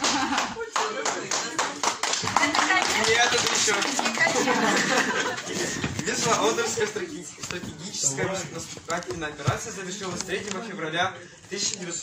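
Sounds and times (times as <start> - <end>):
people clapping: 0.0 - 6.2.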